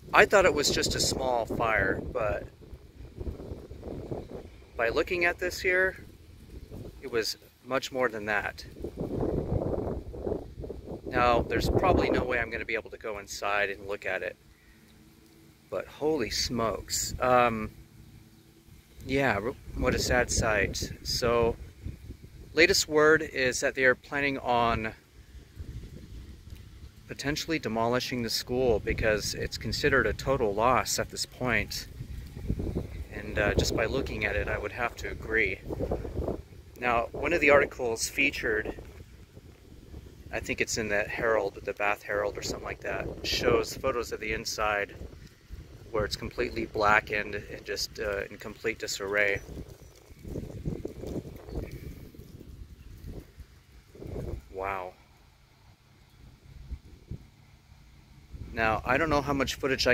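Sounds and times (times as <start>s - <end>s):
faint low rumble: 0.0s - 57.6s
light hiss: 0.0s - 59.9s.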